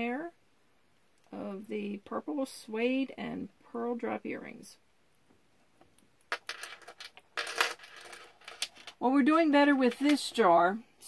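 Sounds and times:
metal jewelry clinking: 6.3 - 9.0.

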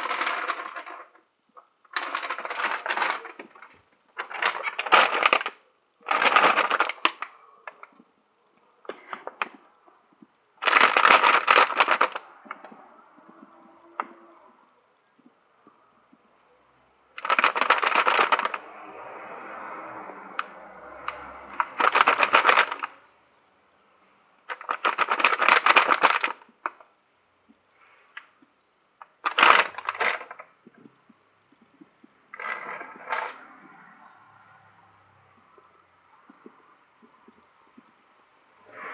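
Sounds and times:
dense crackling and crunching: 0.0 - 8.2, 8.8 - 16.1, 17.1 - 18.8, 20.3 - 23.1, 24.4 - 27.0, 27.7 - 34.2.

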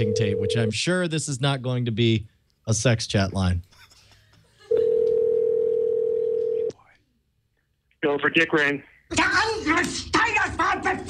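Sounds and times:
telephone ringback tone: 4.8 - 6.7.

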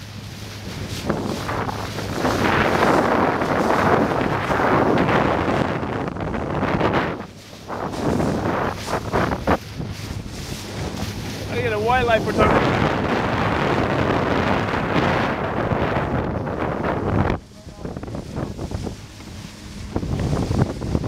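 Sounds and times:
choppy water rushing along hull: 0.0 - 21.0
steady low hum: 0.0 - 21.0
wind buffeting microphone: 0.0 - 21.0.

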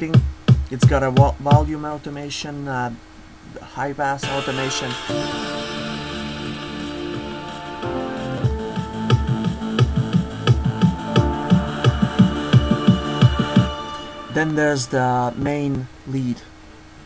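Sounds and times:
kick drum: 0.0 - 1.7, 8.4 - 13.8
sustained synth chords: 4.2 - 16.2.

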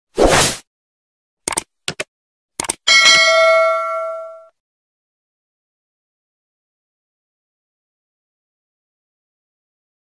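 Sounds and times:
notification bell ding: 2.9 - 4.5.

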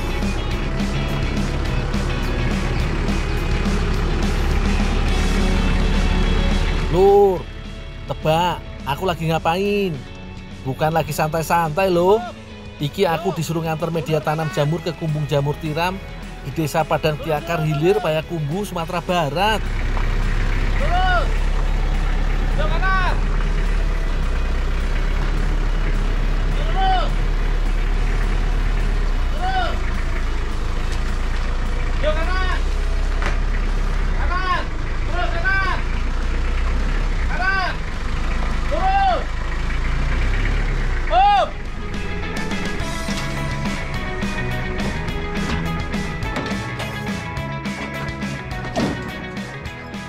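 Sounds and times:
background music with steady beat: 0.0 - 37.1, 40.5 - 50.0
truck engine humming: 0.0 - 50.0.

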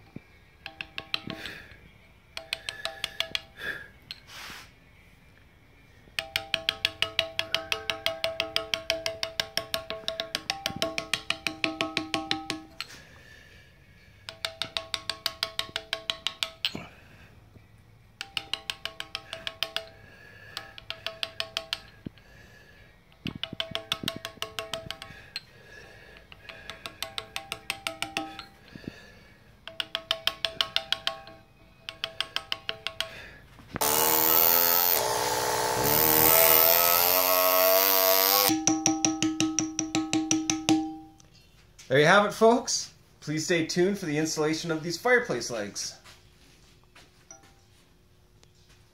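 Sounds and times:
mallet tapping chisel into stone: 0.6 - 1.5, 2.3 - 3.6, 6.2 - 12.9, 14.3 - 16.8, 18.2 - 20.0, 20.6 - 22.1, 23.2 - 25.2, 26.2 - 28.5, 29.6 - 33.2, 33.8 - 41.1.

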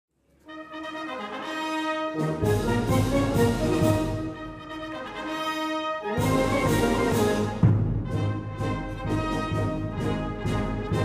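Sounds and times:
brass band playing a march: 0.4 - 11.0.

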